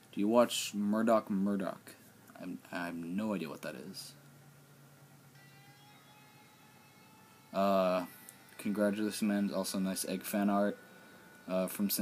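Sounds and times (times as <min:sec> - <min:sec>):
low steady hum: 0:00.0 - 0:12.0
faint steady tones: 0:00.8 - 0:12.0.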